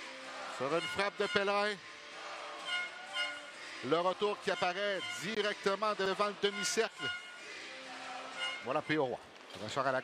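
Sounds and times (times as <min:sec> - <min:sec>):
crowd murmur in arena: 0:00.0 - 0:10.0
faint music: 0:00.0 - 0:10.0.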